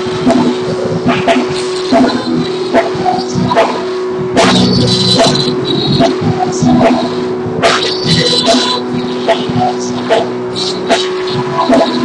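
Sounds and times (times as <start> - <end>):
drum hits: 0.2 - 10.2
held keyboard tone: 0.2 - 12.0.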